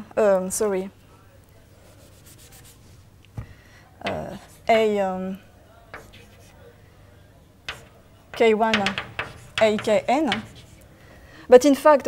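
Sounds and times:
chalk scratching on blackboard: 1.8 - 3.0, 6.0 - 6.7, 7.7 - 11.0
short knock: 6.0 - 6.5, 7.7 - 10.9.

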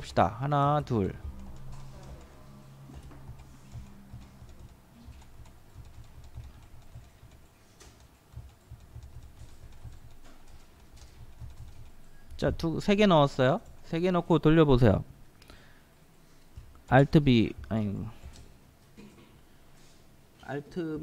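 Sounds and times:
keyboard keystrokes: 0.8 - 12.6.

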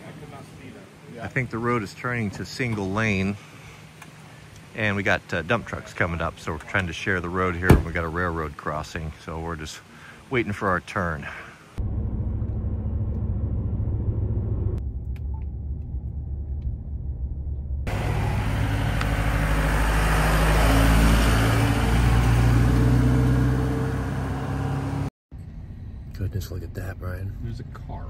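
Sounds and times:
road rumble inside truck cab: 7.7 - 8.1, 11.8 - 28.0
vehicle engine running close: 17.9 - 28.0.

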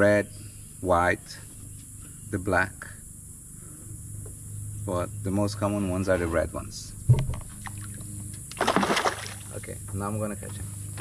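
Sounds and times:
dull thump: 7.1 - 7.5
bait splashing water: 7.6 - 9.5.

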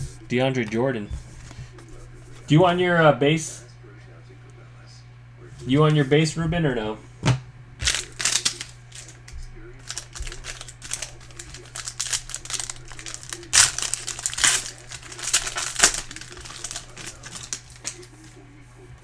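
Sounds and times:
foil wrapper crinkling: 7.8 - 18.4.

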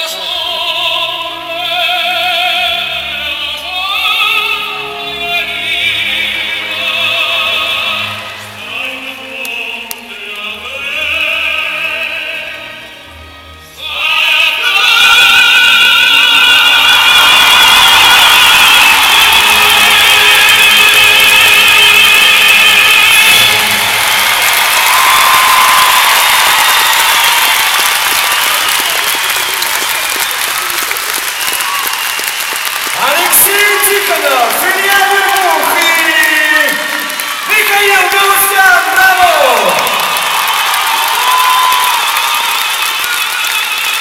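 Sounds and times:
operatic singing with vibrato: 0.0 - 44.0
audience applause: 15.8 - 44.0
person speaking: 33.0 - 36.9.

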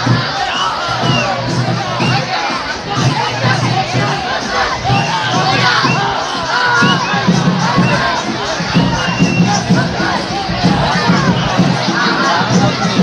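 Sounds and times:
crowd shouting and cheering: 0.0 - 13.0.

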